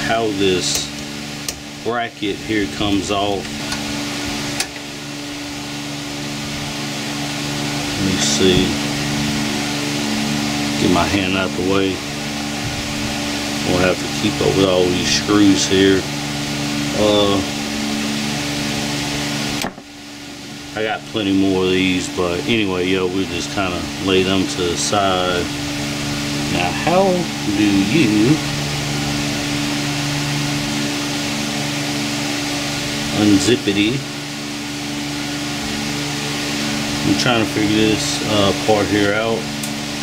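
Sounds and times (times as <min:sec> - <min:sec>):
fan humming and rushing air: 0:00.0 - 0:40.0.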